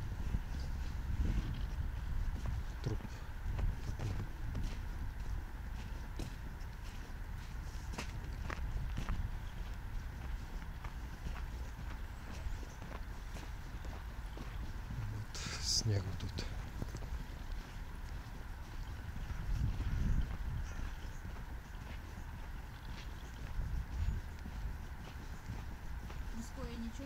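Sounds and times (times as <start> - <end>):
footsteps on packed snow: 0.0 - 27.0
wind rumble on microphone: 0.0 - 27.0.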